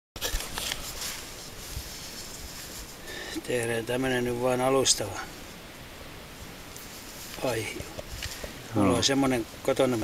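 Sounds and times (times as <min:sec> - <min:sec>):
bark scraping and rustling: 0:00.2 - 0:03.0, 0:06.7 - 0:09.7
steady outdoor hiss: 0:00.2 - 0:10.0.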